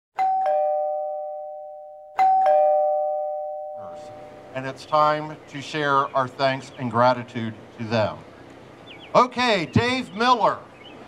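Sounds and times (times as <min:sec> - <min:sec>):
two-note doorbell chime: 0:00.2 - 0:04.3.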